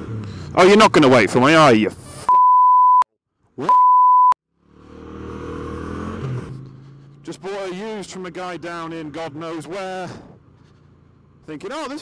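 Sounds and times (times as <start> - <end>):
high-pitched censor bleeps: 2.3 - 4.4
motorcycle engine rumble: 4.6 - 12.0.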